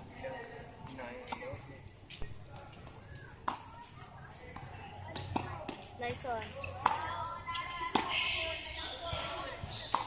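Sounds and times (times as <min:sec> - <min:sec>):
tennis ball struck by racket: 0:06.7 - 0:07.1, 0:07.8 - 0:08.5, 0:09.1 - 0:10.0.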